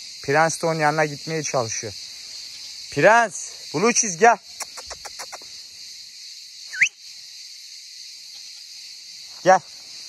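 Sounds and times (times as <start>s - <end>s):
cicadas buzzing: 0.0s - 10.0s.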